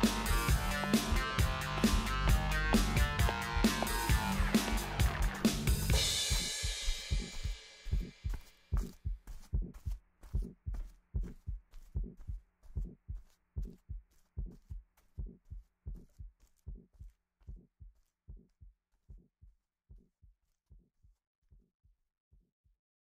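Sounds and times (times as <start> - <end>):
rhythmic thudding beat with clicks: 0.0 - 21.7.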